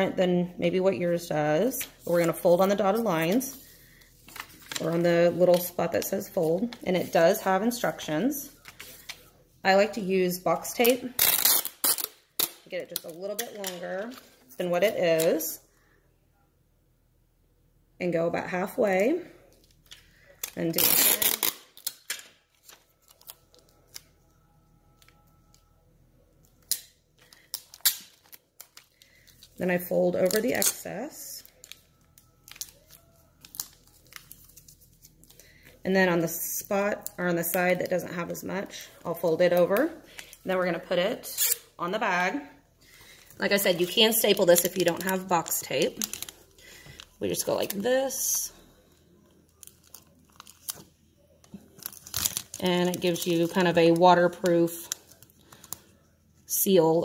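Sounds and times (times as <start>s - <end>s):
packing tape crackling: 11.1s - 14.2s, 19.6s - 25.7s, 26.4s - 35.8s, 42.9s - 47.9s, 49.2s - 55.9s
taped paper tag crinkling: 43.0s - 47.9s, 51.7s - 55.8s.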